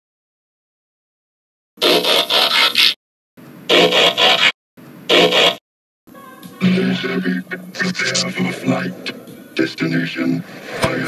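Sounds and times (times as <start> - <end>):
mechanical scraping and ratcheting: 1.8 - 3.0.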